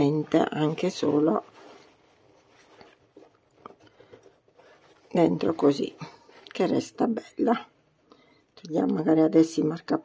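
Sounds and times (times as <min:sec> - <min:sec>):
faint rustling of net bag: 0:00.0 - 0:06.5.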